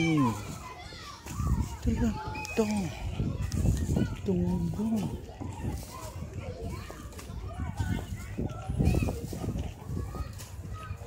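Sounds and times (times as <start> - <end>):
distant children calling and playing: 0.0 - 11.0.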